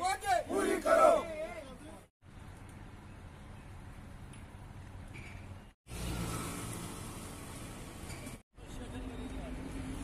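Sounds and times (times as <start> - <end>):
street noise: 0.0 - 10.0
small engine passing by: 5.9 - 7.9.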